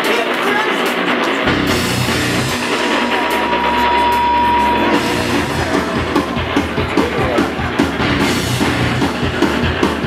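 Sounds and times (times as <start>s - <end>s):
long high held note: 1.5s - 6.8s.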